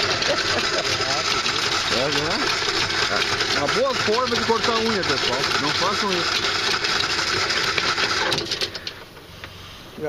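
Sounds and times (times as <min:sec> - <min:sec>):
anchor windlass motor: 0:00.0 - 0:09.2.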